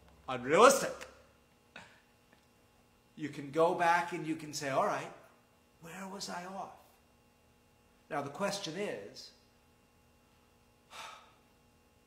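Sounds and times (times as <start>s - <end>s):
man breathing: 10.8s - 11.6s.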